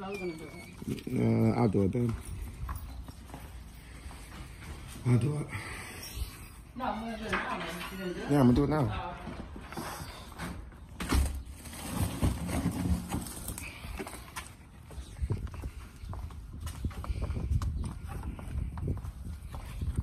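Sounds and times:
footsteps on concrete: 0.0s - 5.9s, 12.0s - 20.0s.

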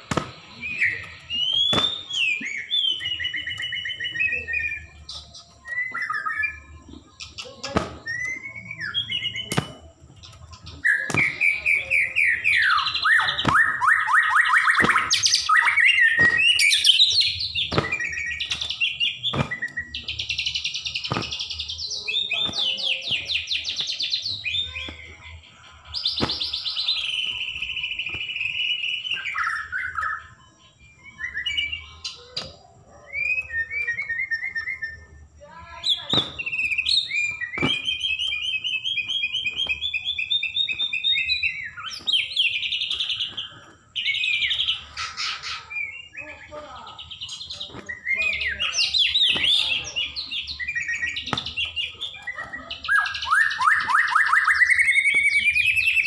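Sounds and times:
songbird singing whistled phrases: 0.1s - 56.0s.

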